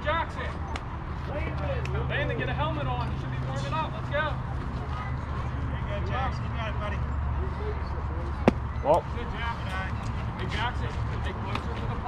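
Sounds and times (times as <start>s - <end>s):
baseball impact: 8.4s - 8.7s.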